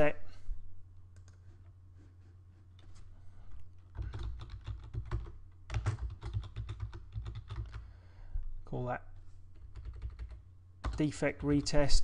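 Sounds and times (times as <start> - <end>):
computer keyboard typing: 3.8 - 7.8, 9.6 - 11.8.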